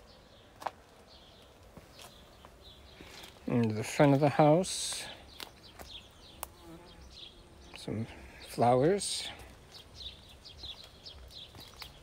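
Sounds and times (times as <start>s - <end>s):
flying insect buzzing: 6.2s - 8.2s
faint sharp clicks: 6.4s - 6.6s.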